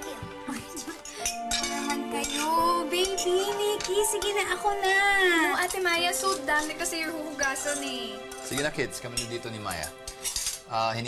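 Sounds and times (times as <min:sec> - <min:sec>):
background music with sustained tones: 0:00.0 - 0:11.0
cutlery clinking on plate: 0:01.0 - 0:04.4, 0:07.5 - 0:10.7.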